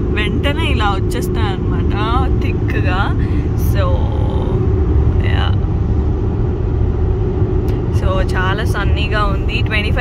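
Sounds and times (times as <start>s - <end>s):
car cabin road noise: 0.0s - 10.0s.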